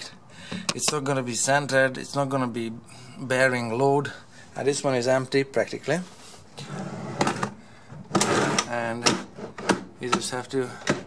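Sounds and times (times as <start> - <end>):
drawer rolling on ball-bearing slides: 6.6 - 11.0.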